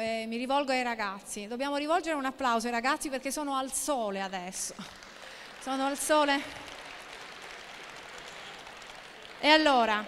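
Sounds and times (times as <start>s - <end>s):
faint audience applause: 4.6s - 10.0s.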